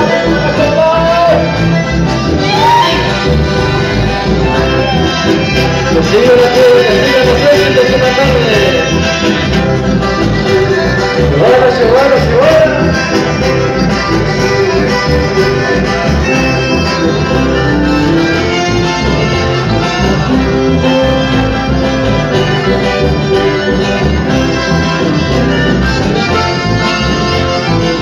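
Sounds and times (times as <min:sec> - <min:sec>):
accordion folk band playing: 0:00.0 - 0:28.0.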